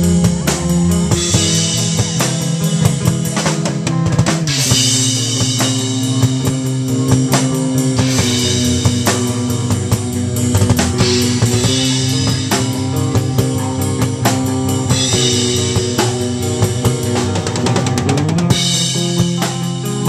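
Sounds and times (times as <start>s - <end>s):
drum and cymbal hits: 0.0s - 20.0s
loud live rock band: 0.0s - 20.0s.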